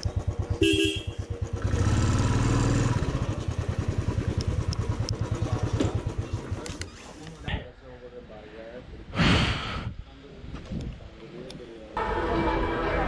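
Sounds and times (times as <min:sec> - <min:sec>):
motorcycle engine running: 0:00.0 - 0:06.8
horn toot: 0:00.6 - 0:01.2.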